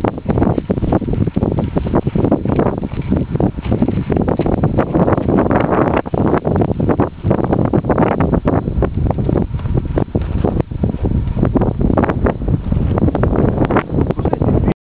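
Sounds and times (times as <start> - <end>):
wind buffeting microphone: 0.0 - 14.8.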